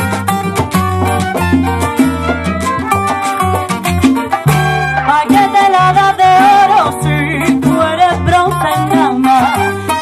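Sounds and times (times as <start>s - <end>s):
trumpet melody: 0.0s - 7.0s, 8.6s - 10.0s
acoustic guitar: 0.0s - 10.0s
bass line: 0.0s - 10.0s
conga and bongo percussion: 0.0s - 10.0s.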